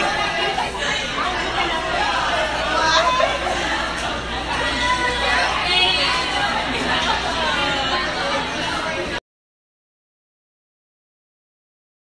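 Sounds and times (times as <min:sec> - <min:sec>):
young people chattering: 0:00.0 - 0:09.2.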